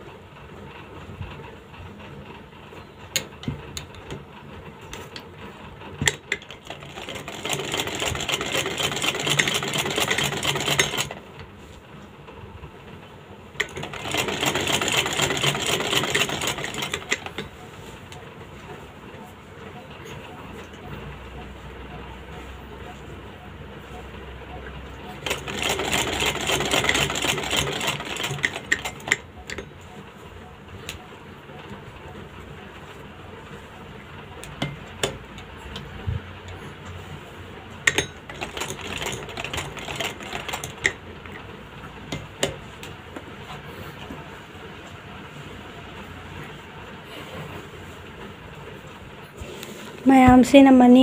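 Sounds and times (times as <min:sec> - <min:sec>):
sewing machine stitching: 0:05.9 - 0:11.4, 0:13.6 - 0:17.6, 0:25.0 - 0:29.8, 0:37.8 - 0:41.5.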